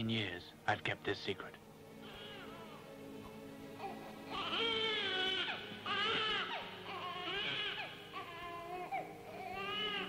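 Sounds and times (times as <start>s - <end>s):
baby crying: 2.0s - 3.0s, 3.8s - 10.0s.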